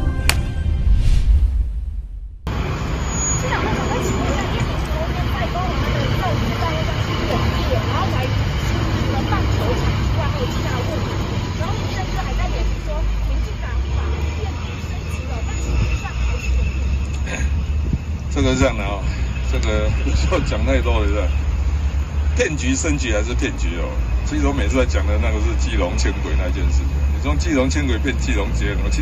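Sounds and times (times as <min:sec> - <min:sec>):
low outdoor rumble: 0:00.0 - 0:29.0
murmur of voices: 0:03.4 - 0:16.8.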